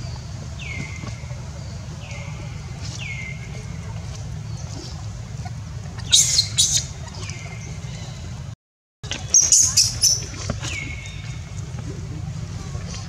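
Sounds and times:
steady low rumble: 0:00.0 - 0:08.6.

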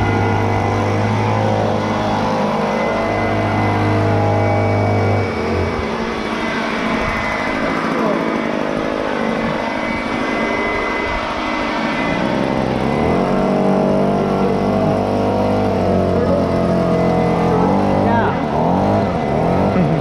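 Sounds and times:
leaf blower running: 0:00.0 - 0:20.0.

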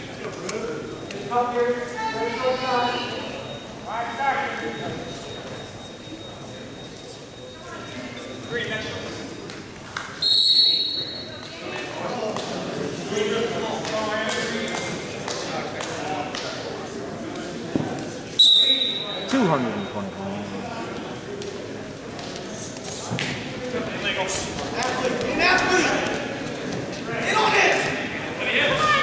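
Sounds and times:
voices in a gym: 0:00.0 - 0:29.0
referee's whistle blast: 0:10.2 - 0:11.2, 0:18.4 - 0:19.3.

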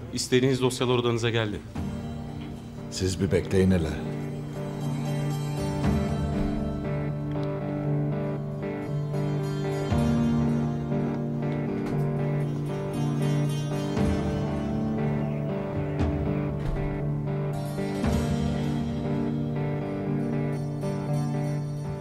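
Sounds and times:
plucked string notes: 0:01.7 - 0:22.0.

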